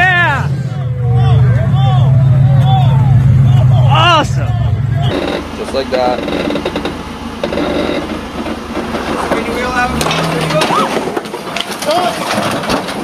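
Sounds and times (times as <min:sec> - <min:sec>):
vehicle engine rumble: 0:00.0 - 0:13.0.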